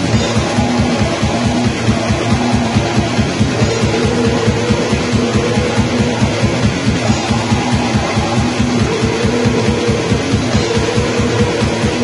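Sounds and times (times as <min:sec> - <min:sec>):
distorted electric guitar: 0:00.0 - 0:12.0
fast driving drumming: 0:00.0 - 0:12.0.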